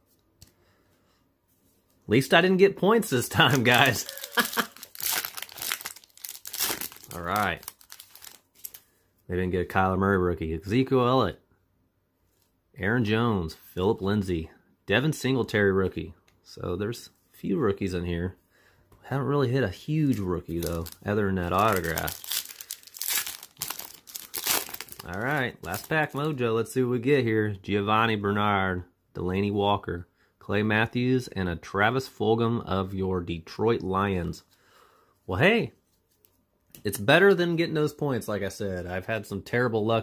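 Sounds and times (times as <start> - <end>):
foil wrapper crinkling and tearing: 3.3 - 8.9, 20.0 - 26.4.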